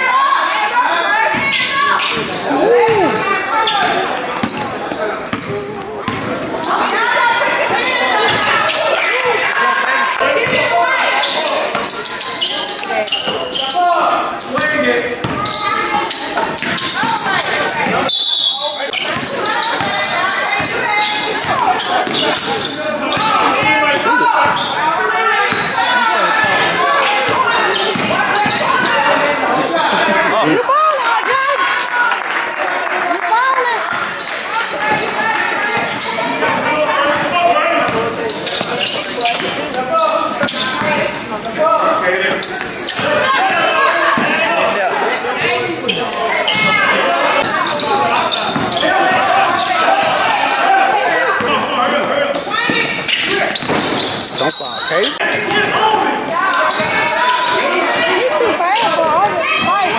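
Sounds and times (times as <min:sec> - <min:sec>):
voices shouting and chattering: 0:00.0 - 0:59.9.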